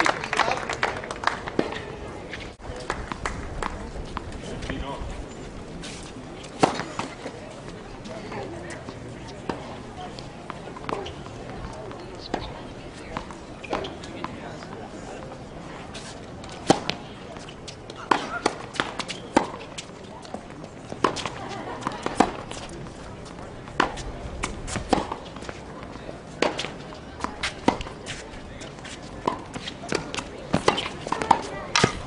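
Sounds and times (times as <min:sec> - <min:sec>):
tennis balls struck by rackets: 0:05.9 - 0:07.4, 0:08.7 - 0:15.3, 0:15.9 - 0:32.0
tennis balls bouncing on court: 0:06.4 - 0:07.4, 0:08.0 - 0:15.4, 0:16.4 - 0:32.0.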